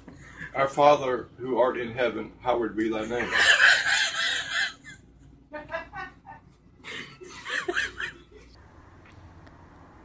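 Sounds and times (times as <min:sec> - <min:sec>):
high-pitched breathy laugh: 0:03.2 - 0:05.0.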